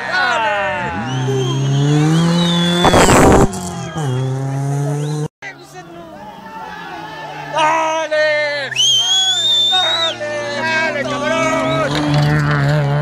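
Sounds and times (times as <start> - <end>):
rally car engine accelerating: 0.8 - 5.3, 8.8 - 13.0.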